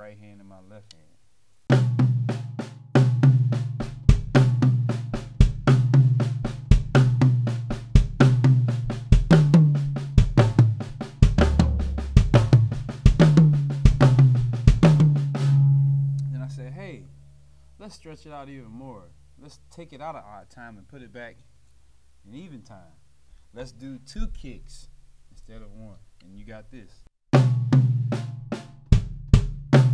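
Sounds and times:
drum kit played fast: 1.7 - 17.1, 27.3 - 29.9
bass drum kicks: 1.8 - 16.4, 27.3 - 29.9.

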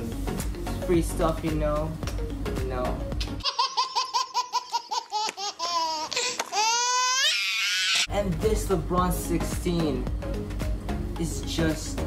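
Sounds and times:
baby laughing and squealing: 3.4 - 8.1.

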